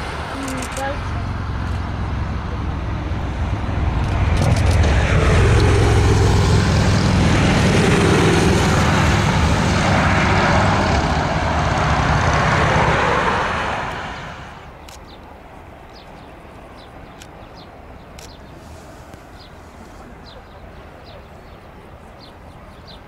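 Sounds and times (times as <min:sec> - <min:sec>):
jet engines roaring: 0:00.0 - 0:15.0.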